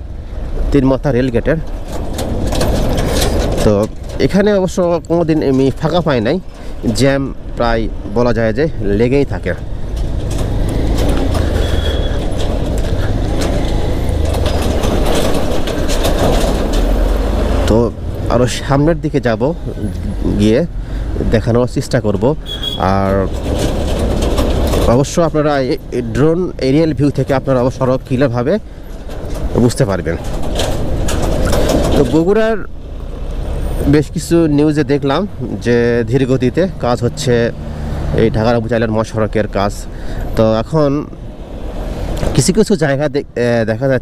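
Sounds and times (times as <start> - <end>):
wind and road noise: 0.0 - 44.0.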